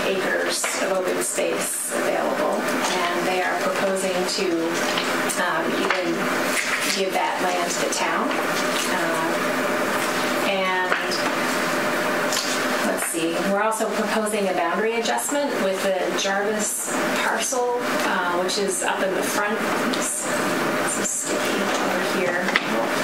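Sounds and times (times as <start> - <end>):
woman talking into a microphone: 0.0 - 9.4, 10.4 - 11.3, 12.8 - 23.0.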